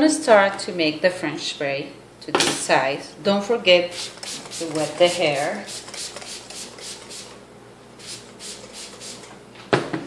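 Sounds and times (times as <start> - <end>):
spray bottle squirts: 3.9 - 7.3, 8.0 - 9.3.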